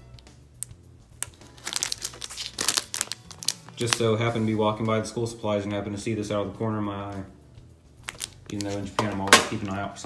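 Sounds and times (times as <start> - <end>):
plastic packaging crinkling: 1.2 - 4.5, 8.0 - 9.8.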